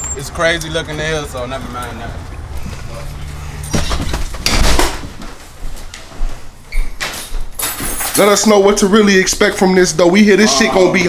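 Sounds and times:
bumps and knocks of movement: 3.5 - 6.1.

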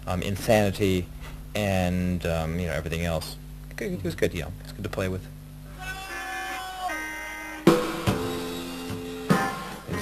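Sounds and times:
electric guitar notes: 6.0 - 10.0
live rock band playing: 7.0 - 10.0
drum hits: 7.6 - 10.0.

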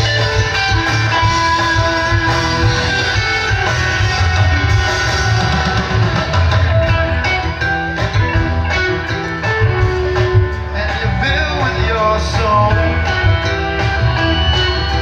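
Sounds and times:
guitar sustained bending notes: 0.0 - 15.0
live band playing: 0.0 - 15.0.

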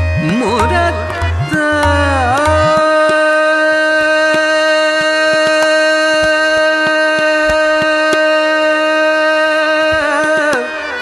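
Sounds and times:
harmonium: 0.0 - 11.0
soft tabla strokes: 0.0 - 11.0.

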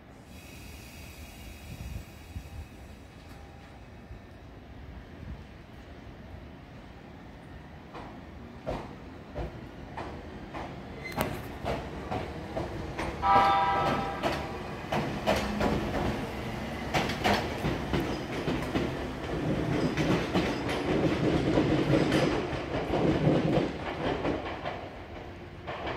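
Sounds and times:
train rumbling: 0.0 - 25.9.

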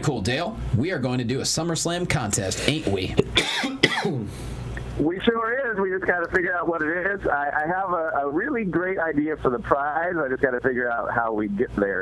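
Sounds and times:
man coughing: 3.2 - 4.4.

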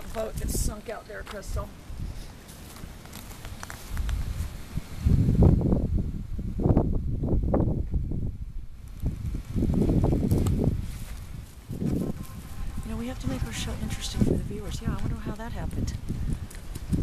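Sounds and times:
wind buffeting microphone: 0.0 - 2.3, 3.5 - 17.0.

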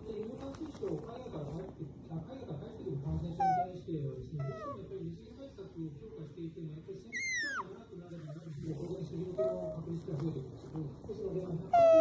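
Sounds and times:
otter squealing: 7.1 - 7.7, 11.7 - 12.0
otter chattering: 7.1 - 8.5, 11.7 - 12.0.

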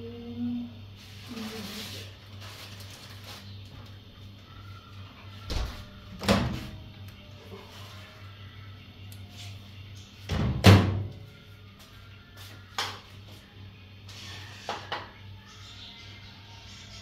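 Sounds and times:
steady low hum: 0.0 - 17.0
dull kitchen knocks and thuds: 10.3 - 11.1.

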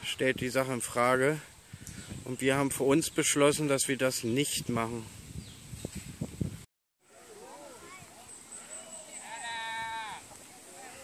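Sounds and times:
faint distant voices: 7.0 - 11.0
drawn-out call: 7.2 - 11.0.

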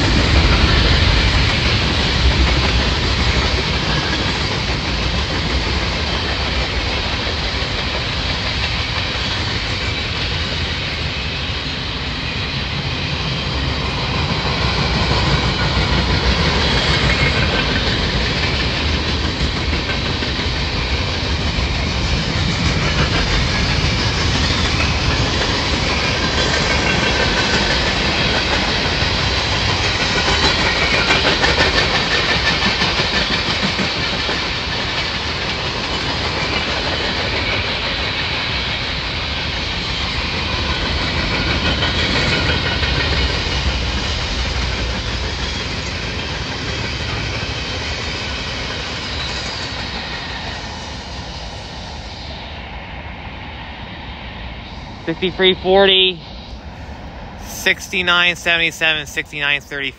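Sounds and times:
steel wheels rumbling on rail: 0.0 - 59.9
wheels clacking over rail joints: 13.7 - 38.8, 40.0 - 50.1.

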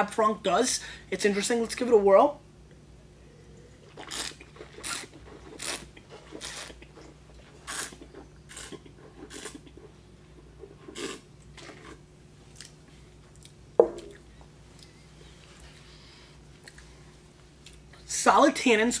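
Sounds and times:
slurping wine: 3.5 - 12.0.

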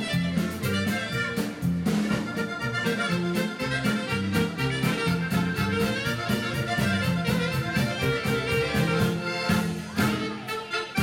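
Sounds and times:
accordion melody: 0.0 - 11.0
bass and drum beat: 0.0 - 11.0.

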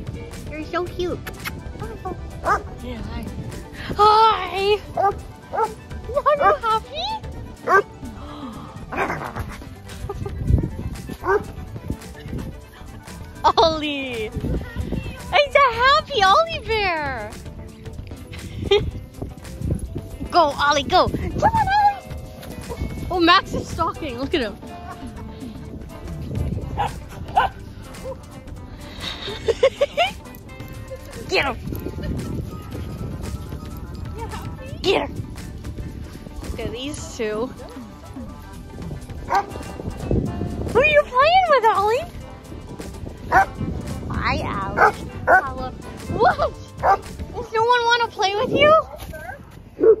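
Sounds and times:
dogs barking and yipping: 1.3 - 2.8, 4.8 - 8.0, 8.9 - 13.6, 21.4 - 23.8, 24.6 - 35.6, 37.3 - 41.6, 42.8 - 47.6, 48.6 - 50.0
dog barking: 2.4 - 2.7, 5.0 - 5.8, 6.4 - 6.6, 7.7 - 7.9, 11.2 - 11.5, 26.8 - 28.2, 39.2 - 39.6, 43.3 - 43.6, 44.8 - 45.5, 46.8 - 47.0, 49.8 - 50.0.

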